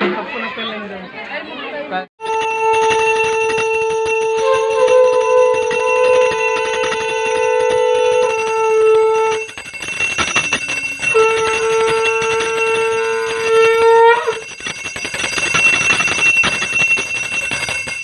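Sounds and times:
conch shell blasts: 2.2s - 9.5s, 11.0s - 14.5s
bell ringing: 2.2s - 18.0s.

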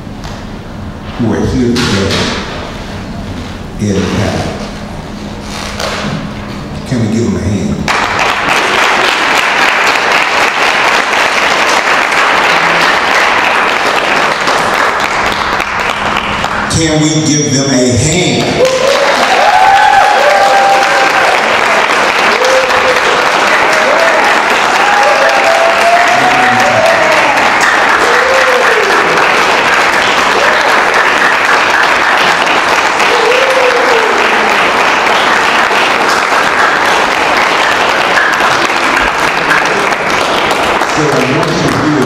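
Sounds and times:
audience applause: 7.9s - 16.9s, 18.4s - 42.0s
shouted cheers: 18.6s - 29.4s, 32.9s - 34.8s.

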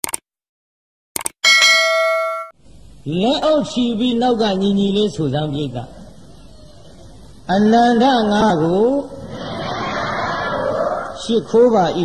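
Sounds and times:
notification bell ding: 1.4s - 2.6s.

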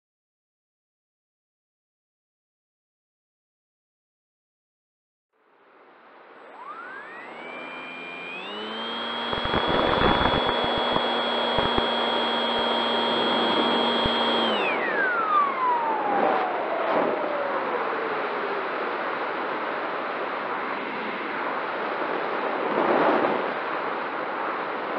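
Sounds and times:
electric motor propeller whine: 5.8s - 22.6s.

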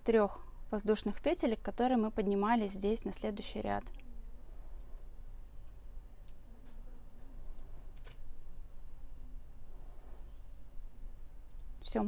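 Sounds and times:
woman speaking: 0.0s - 4.0s, 11.8s - 12.0s
low background hum: 0.0s - 12.0s.

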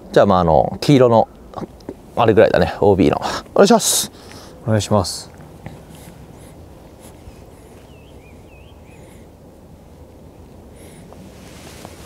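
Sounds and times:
low outdoor rumble: 0.0s - 12.0s
birds chirping: 1.3s - 11.3s
wavering whistled bird notes: 7.8s - 9.2s.

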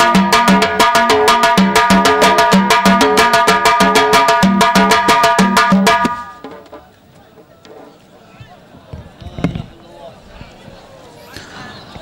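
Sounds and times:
drums beating fast rhythm: 0.0s - 6.8s.

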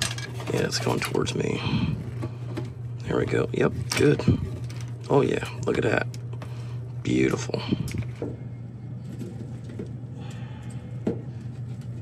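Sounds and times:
refrigeration equipment humming: 0.0s - 12.0s
rustling of electrical cords: 0.0s - 12.0s.

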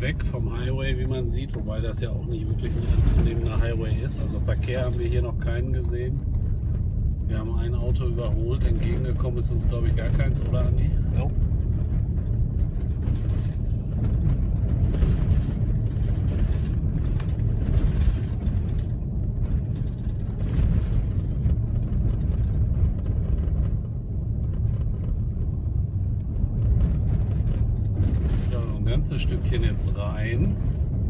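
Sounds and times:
car engine running: 0.0s - 31.0s.

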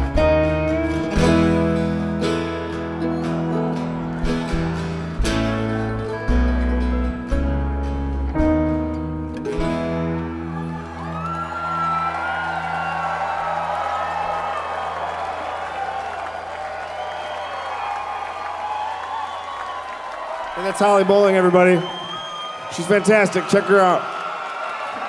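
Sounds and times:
bluegrass band playing: 0.0s - 10.7s
crowd cheering and whistling: 2.7s - 6.1s, 10.3s - 25.0s.

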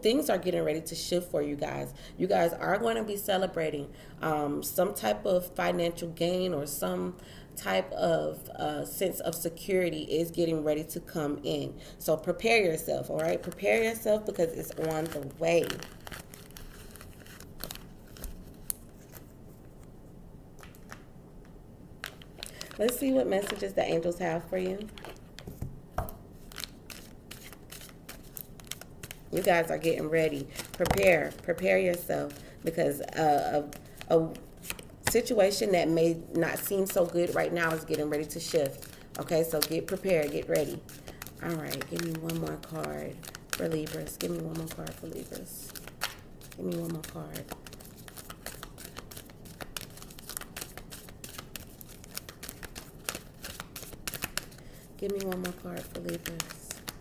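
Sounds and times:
cards being shuffled: 13.2s - 19.9s, 20.6s - 21.1s, 22.0s - 23.7s, 24.6s - 35.7s, 36.5s - 57.0s.

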